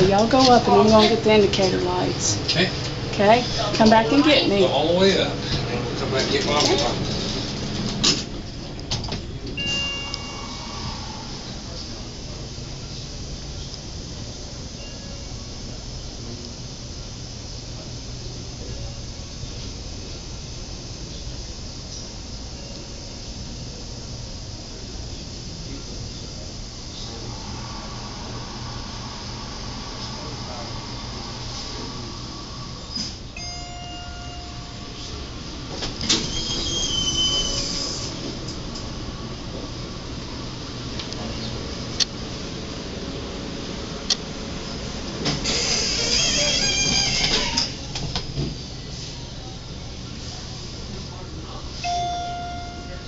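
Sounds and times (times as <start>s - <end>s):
elevator doors sliding shut: 5.4s - 13.6s, 27.0s - 39.1s, 44.8s - 48.6s
elevator electronic chime: 9.5s - 12.5s, 14.6s - 15.7s, 22.4s - 23.8s, 32.8s - 35.8s, 51.8s - 53.0s.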